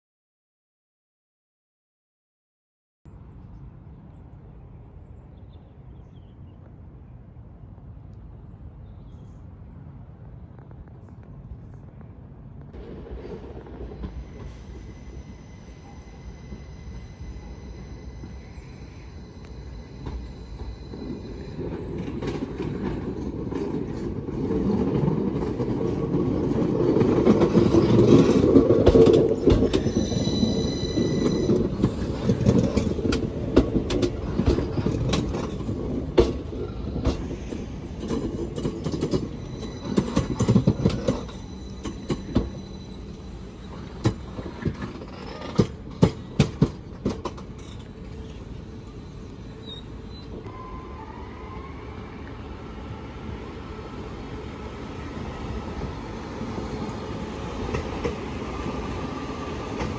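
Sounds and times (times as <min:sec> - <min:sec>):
electric train rumbling: 0:03.1 - 0:59.9
high-pitched squeal: 0:14.0 - 0:22.5, 0:27.6 - 0:33.5, 0:36.6 - 0:45.6
train wheel clicks: 0:31.0 - 0:37.3, 0:38.0 - 0:42.6, 0:43.9 - 0:48.1.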